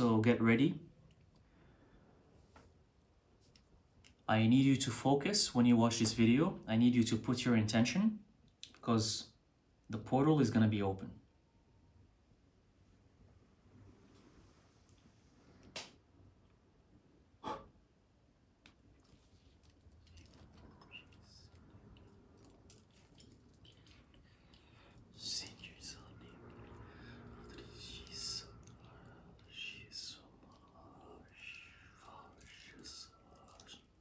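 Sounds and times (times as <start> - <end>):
man whispering: 20.0 - 22.4, 23.6 - 34.0.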